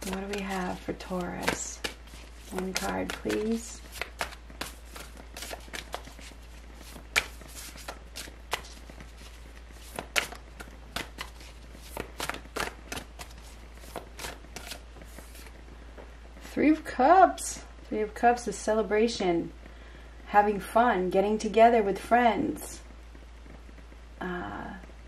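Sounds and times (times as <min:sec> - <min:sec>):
cards snapping while shuffled: 0:00.0 - 0:15.5.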